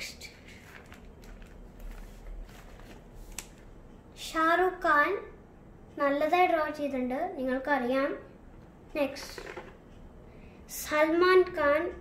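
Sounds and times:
plastic pages rustling: 0.4 - 3.7.

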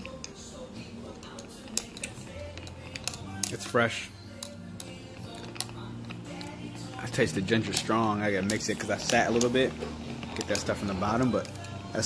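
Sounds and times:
background music: 0.0 - 12.0
metal straw scraping glass: 1.1 - 3.8, 4.8 - 12.0.

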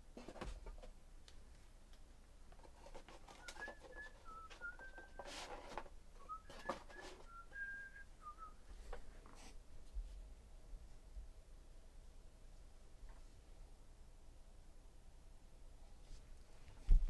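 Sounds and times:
cards rustling and clicking: 2.6 - 7.6
person whistling a tune: 3.3 - 5.4, 6.2 - 8.6.

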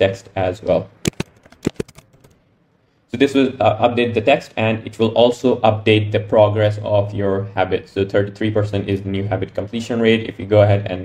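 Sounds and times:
keyboard typing clicks: 1.0 - 2.4.

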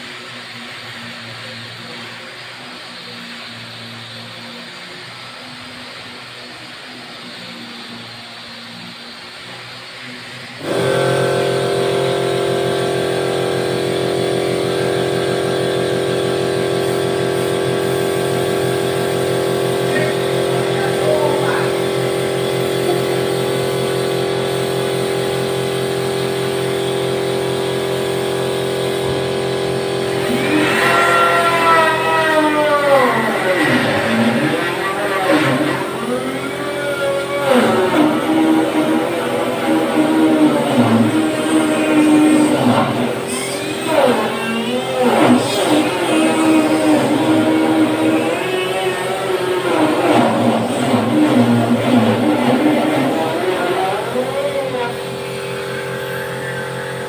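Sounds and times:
motor running loud: 0.0 - 57.0.

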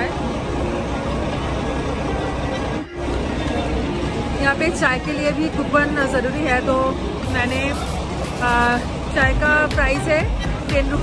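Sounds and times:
background chatter: 0.0 - 11.0
idling vehicle engines: 0.0 - 11.0.

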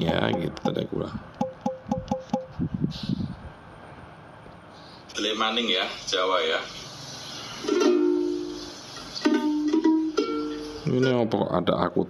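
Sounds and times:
ukulele strumming: 7.6 - 11.2.

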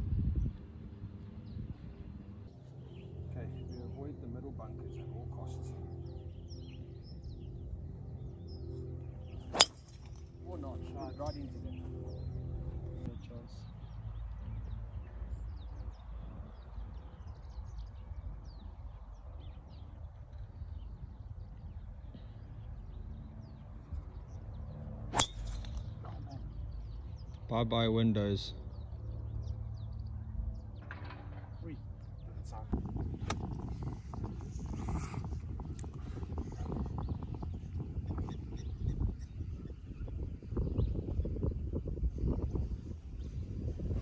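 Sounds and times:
golf club striking ball: 9.5 - 10.2, 25.1 - 25.9, 33.2 - 33.6.

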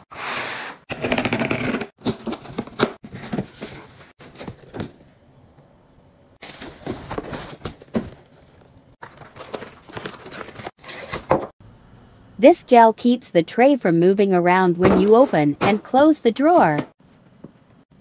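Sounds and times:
cardboard scraping and rustling: 6.4 - 11.5.

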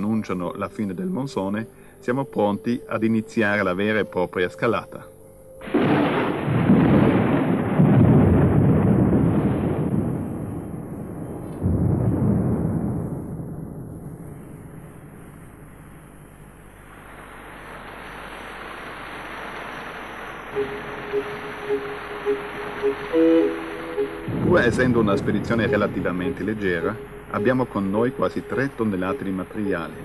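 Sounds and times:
thunder rumbling: 5.6 - 16.2, 17.1 - 30.0.

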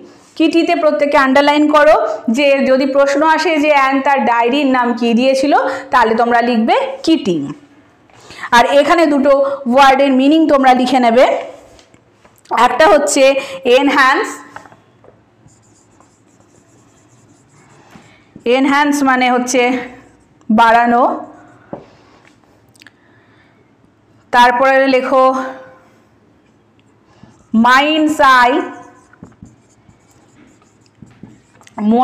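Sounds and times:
pen scratching while writing: 15.5 - 19.0, 27.2 - 31.8.

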